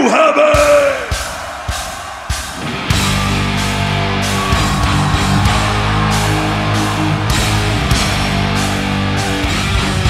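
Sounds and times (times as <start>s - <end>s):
heavy drum hits: 0.6s - 8.7s
heavy guitar riff: 2.3s - 10.0s.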